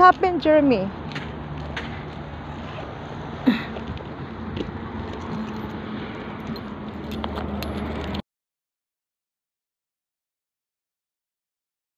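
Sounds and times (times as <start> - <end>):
metallic clicks and jingles: 5.1 - 8.2.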